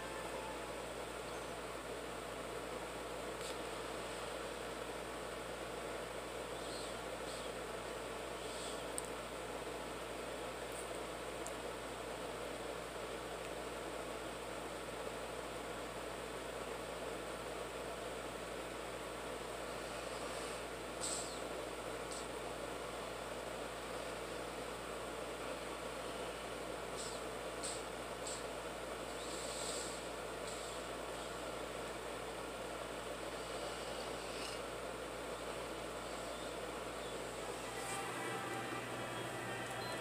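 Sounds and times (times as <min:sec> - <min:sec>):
faint low hum: 0:00.0 - 0:40.0
steady background hiss: 0:00.0 - 0:40.0.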